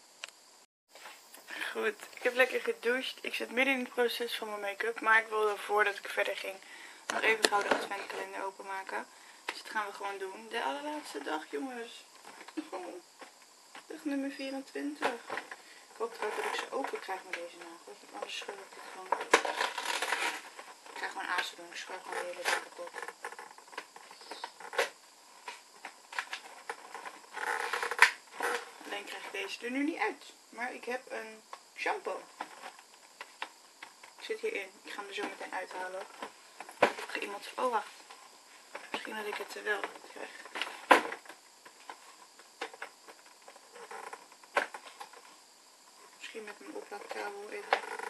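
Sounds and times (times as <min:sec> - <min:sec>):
cardboard clicks and rustles: 0:22.2 - 0:28.8.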